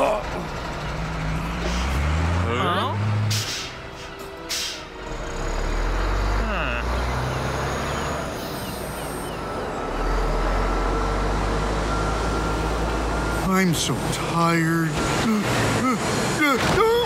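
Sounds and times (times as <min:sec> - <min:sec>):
cartoon truck engine rumble: 0:00.0 - 0:17.0.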